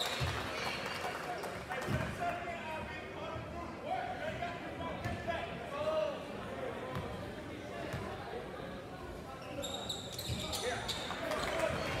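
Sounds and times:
sneakers squeaking: 0:09.3 - 0:12.0.

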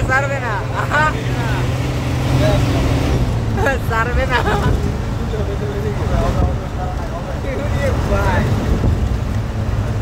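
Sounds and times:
bus diesel engine droning: 0:00.0 - 0:10.0
road noise: 0:00.0 - 0:10.0.

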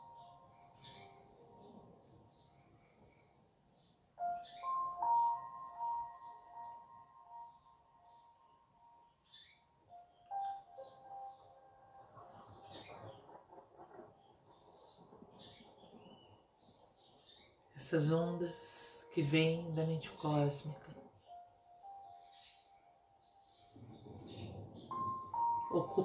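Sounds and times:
soft music of sustained notes: 0:00.0 - 0:26.0.

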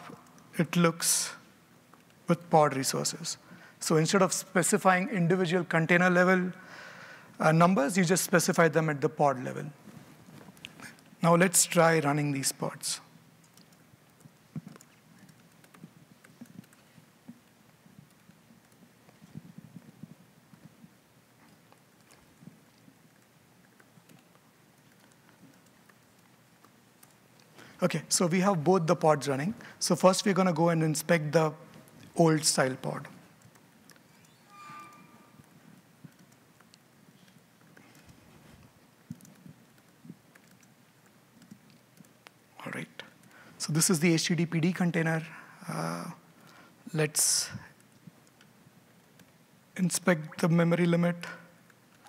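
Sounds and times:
computer keyboard keystrokes: 0:13.4 - 0:16.8, 0:36.0 - 0:38.2, 0:39.0 - 0:42.2
typing on laptop keyboard: 0:13.4 - 0:20.9, 0:21.7 - 0:27.5, 0:39.0 - 0:42.4.

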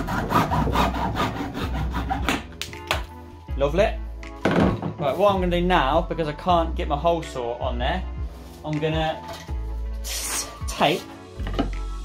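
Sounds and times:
hacksaw cutting plastic: 0:00.0 - 0:02.5.

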